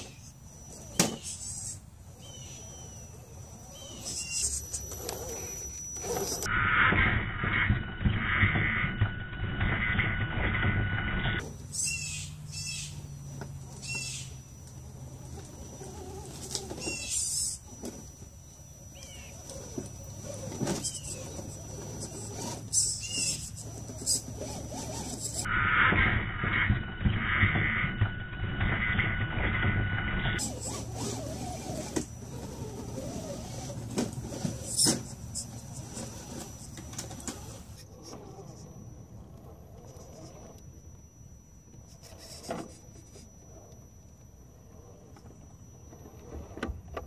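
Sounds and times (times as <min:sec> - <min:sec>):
bird warbling calls: 0:00.0 - 0:06.5, 0:11.6 - 0:13.1, 0:13.8 - 0:14.5, 0:16.7 - 0:17.7, 0:18.8 - 0:24.3
electric motor and gears whining: 0:00.0 - 0:47.0
low steady hum: 0:00.0 - 0:47.0
rc crawler rasping rumble: 0:00.0 - 0:47.0.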